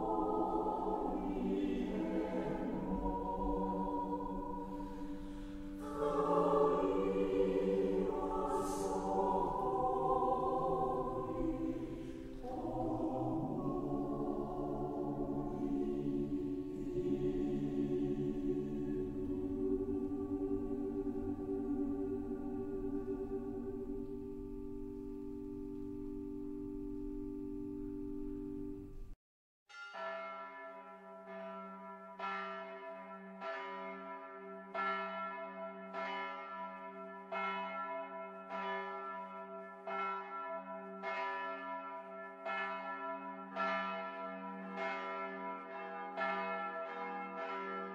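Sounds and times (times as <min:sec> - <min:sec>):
church bells ringing: 0:00.0 - 0:28.8, 0:29.7 - 0:47.9
sustained musical chord: 0:00.0 - 0:29.2.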